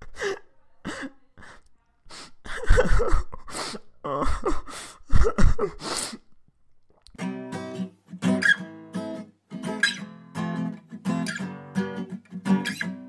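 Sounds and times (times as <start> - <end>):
person gasping and exclaiming: 0.0 - 6.3.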